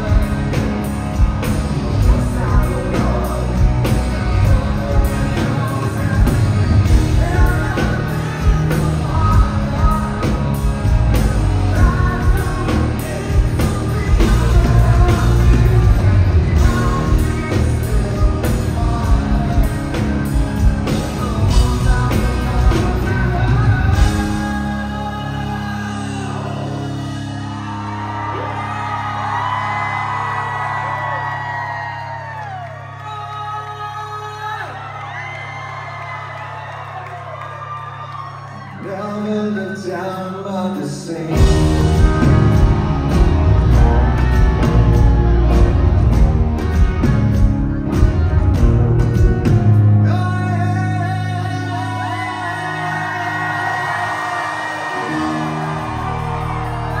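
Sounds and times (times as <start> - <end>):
rock band holding a sustained chord: 0.0 - 38.8, 41.2 - 57.0
audience cheering and whooping: 0.0 - 40.2, 41.3 - 57.0.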